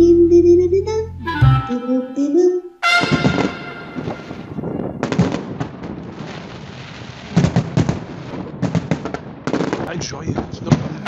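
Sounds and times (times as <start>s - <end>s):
fireworks bangs: 2.8s - 11.0s
fireworks crackling: 3.0s - 11.0s.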